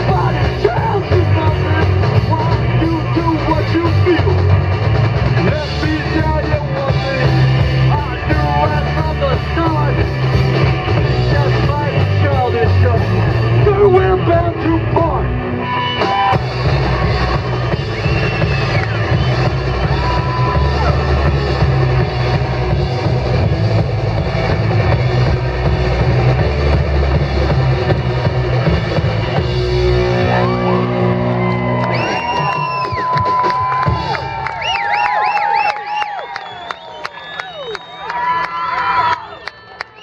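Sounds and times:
rock band playing live: 0:00.0 - 0:36.1
crowd cheering and whooping: 0:15.6 - 0:23.0, 0:28.8 - 0:40.0.

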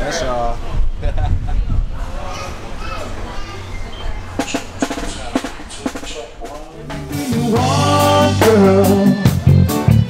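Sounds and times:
drum kit hits: 0:04.4 - 0:10.0.

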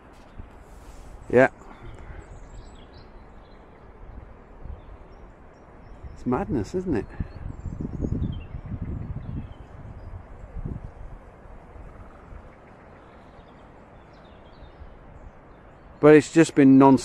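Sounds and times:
faint bird chirps: 0:11.6 - 0:16.2.

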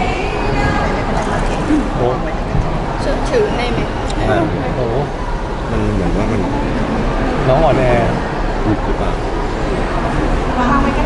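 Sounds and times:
person speaking: 0:04.1 - 0:05.0, 0:05.7 - 0:06.7.

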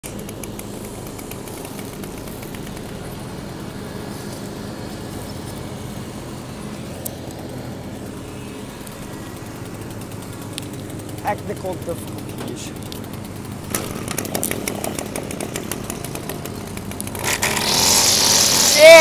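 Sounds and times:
string trimmer engine idling: 0:00.0 - 0:19.0.

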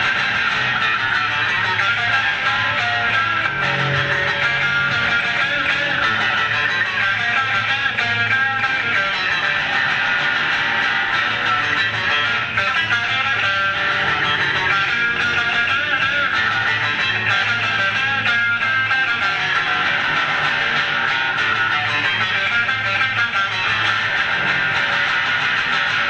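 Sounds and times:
bass guitar: 0:00.0 - 0:26.0
electric guitar: 0:00.0 - 0:26.0
instrumental rock band music: 0:00.0 - 0:26.0.

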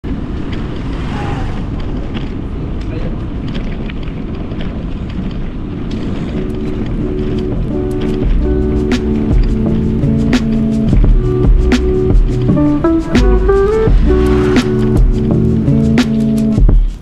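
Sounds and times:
steady rushing noise: 0:00.0 - 0:17.0
scattered clicks: 0:01.8 - 0:13.6
soft lofi music chords: 0:05.8 - 0:17.0.

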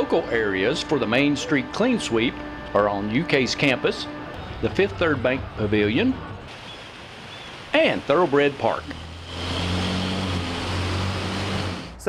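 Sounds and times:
vehicle engine humming: 0:00.0 - 0:12.0
traffic noise: 0:04.0 - 0:12.0.

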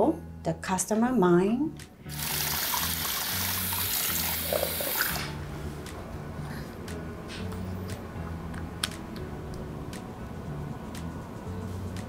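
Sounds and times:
shower sprayer water hissing: 0:02.1 - 0:05.4.

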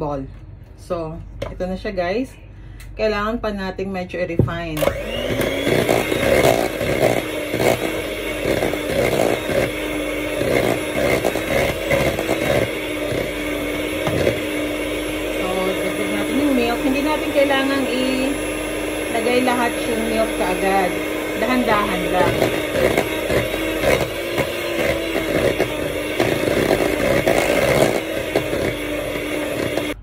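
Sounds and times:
electric mixer running: 0:04.8 - 0:30.0.

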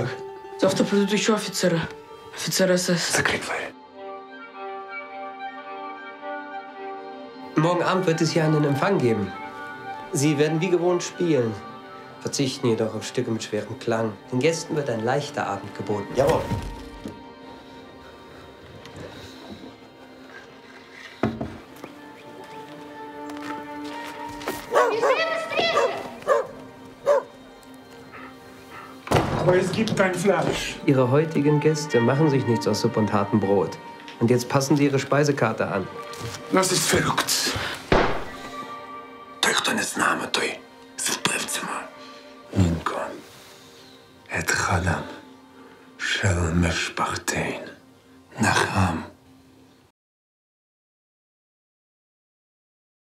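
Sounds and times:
dog barking: 0:24.7 - 0:27.4.

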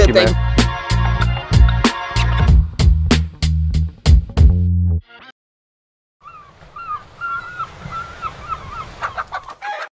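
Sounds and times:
bird calling: 0:06.2 - 0:09.9.

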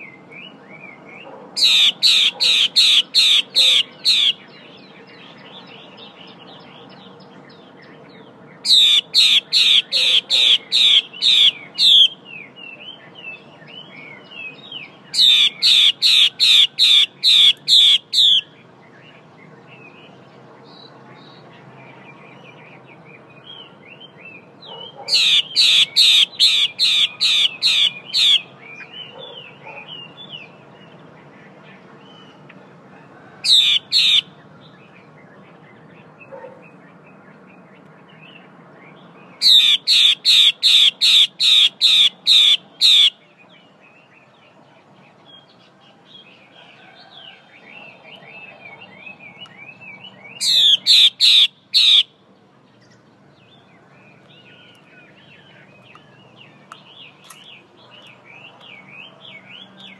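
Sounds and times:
bird harsh repeated call: 0:00.0 - 0:04.7, 0:08.6 - 0:18.6, 0:24.6 - 0:30.5, 0:33.1 - 0:34.5, 0:39.4 - 0:43.4, 0:47.9 - 0:52.2.

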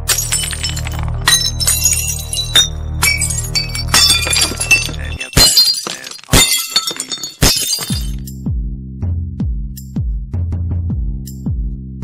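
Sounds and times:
glass shattering: 0:00.0 - 0:08.3
deep kick drums: 0:08.4 - 0:08.8, 0:09.4 - 0:11.8.

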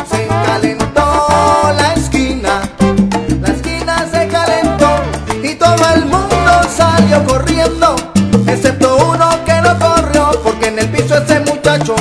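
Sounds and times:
salsa band playing: 0:00.0 - 0:12.0.

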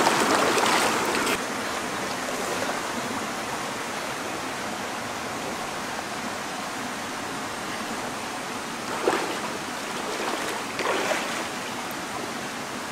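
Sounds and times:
stream flowing over rocks: 0:00.0 - 0:12.9.

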